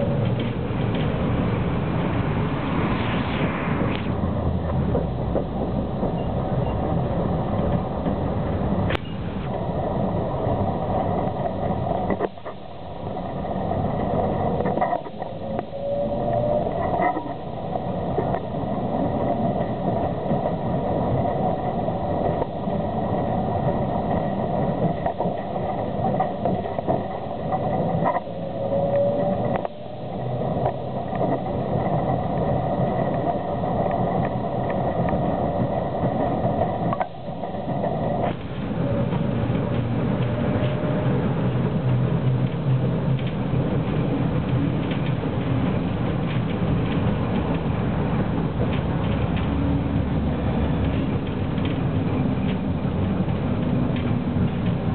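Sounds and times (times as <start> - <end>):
rising tram whine: 0.0 - 54.9
tram wheel running noise: 0.0 - 54.9.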